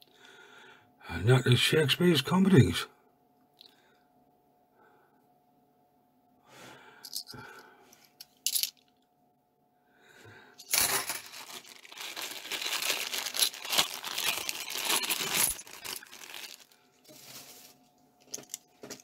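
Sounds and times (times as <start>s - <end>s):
coins clinking: 8.4s - 8.8s, 10.6s - 11.8s, 13.0s - 16.1s
plastic bag crinkling: 10.6s - 19.0s.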